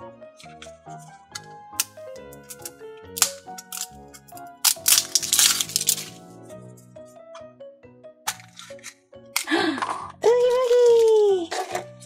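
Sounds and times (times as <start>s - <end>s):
background music: 0.0s - 12.0s
plastic wrap tearing and crinkling: 2.6s - 3.9s, 4.6s - 6.2s.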